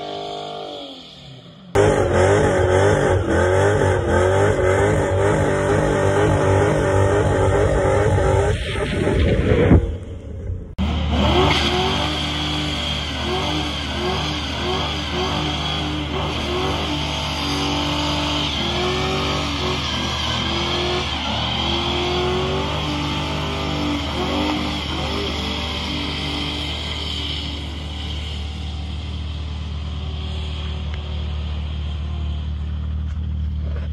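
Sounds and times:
tires squealing: 0.0s - 10.2s, 10.8s - 33.9s
car engine revving: 0.0s - 33.9s.

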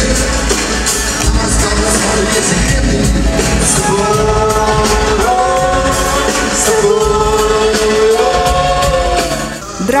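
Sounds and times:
pop-rock band accompaniment: 0.0s - 10.0s.

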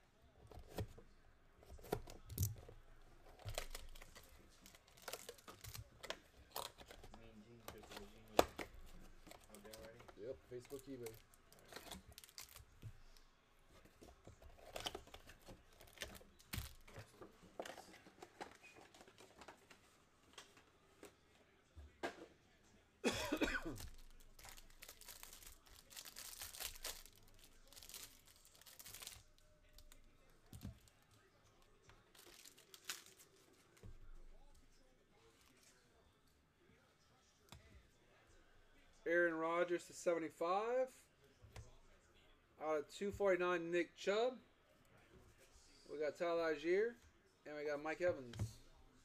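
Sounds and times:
foil wrapper crinkling and tearing: 3.3s - 7.0s, 9.2s - 12.7s, 23.7s - 30.2s, 32.0s - 33.8s
person coughing: 23.0s - 23.8s.

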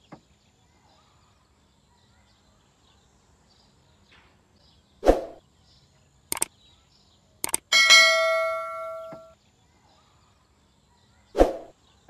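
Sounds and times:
sharp clicks: 6.3s - 6.5s, 7.4s - 7.7s
bell chime: 7.7s - 9.4s.

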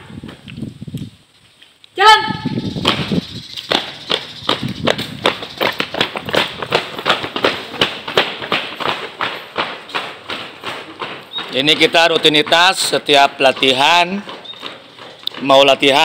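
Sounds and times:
footsteps jogging on concrete: 2.4s - 16.0s.

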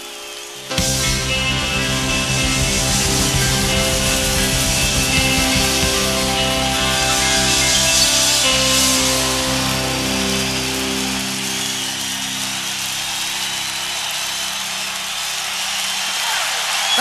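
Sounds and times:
crowd cheering and applauding: 0.0s - 17.0s
rock band final chord: 0.7s - 13.8s.

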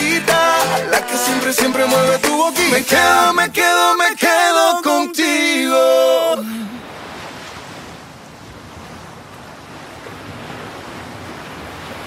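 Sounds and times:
person singing: 0.0s - 6.8s.

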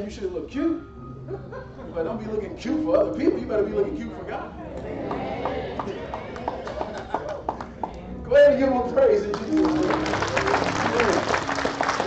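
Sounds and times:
congregation clapping: 5.1s - 8.0s, 9.1s - 12.0s.

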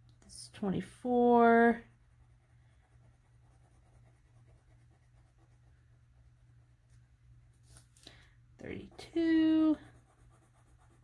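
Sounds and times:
low steady hum: 0.0s - 11.0s
pencil scratching on paper: 1.1s - 6.5s, 8.8s - 11.0s.

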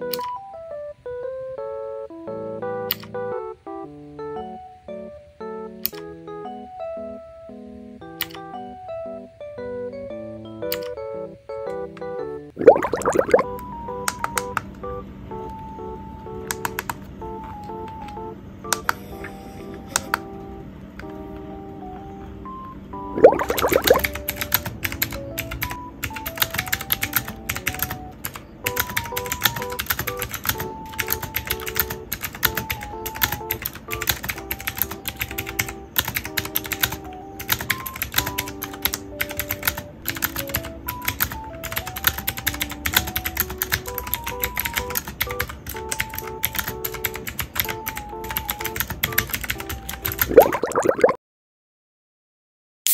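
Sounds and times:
soft background music: 0.0s - 51.1s
mechanical keyboard typing: 2.8s - 3.2s, 5.8s - 6.1s, 8.1s - 8.5s, 10.7s - 11.0s, 13.0s - 19.0s, 23.2s - 50.4s.

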